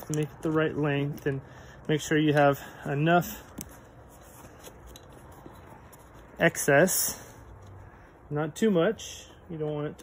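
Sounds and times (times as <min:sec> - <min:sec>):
strap and buckle handling: 0:00.0 - 0:08.2.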